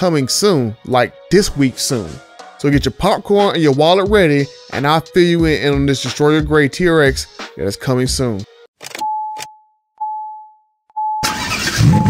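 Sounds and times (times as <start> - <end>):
car warning chime: 9.0 - 12.0
car engine starting and revving: 11.2 - 12.0.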